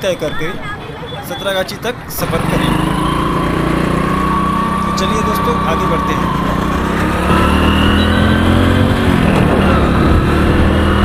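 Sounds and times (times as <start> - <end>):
motorcycle engine running: 2.1 - 11.0.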